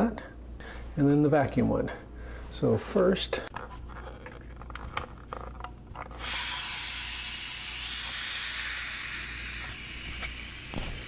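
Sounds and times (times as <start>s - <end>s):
air hissing into canister: 6.2s - 11.0s.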